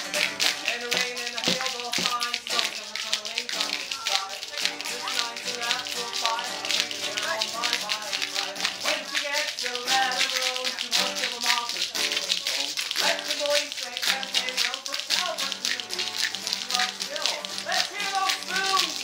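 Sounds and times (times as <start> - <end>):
spoons clattering: 0.0 - 19.0
strummed acoustic guitar: 0.0 - 19.0
voices singing along: 0.0 - 19.0.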